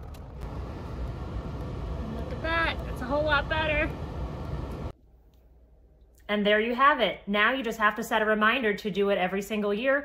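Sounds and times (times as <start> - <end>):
low rumbling background noise: 0.0 - 5.0.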